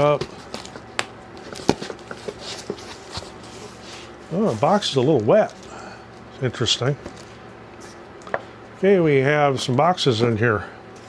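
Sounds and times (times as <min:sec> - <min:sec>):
cardboard flaps rustling: 0:00.0 - 0:05.6.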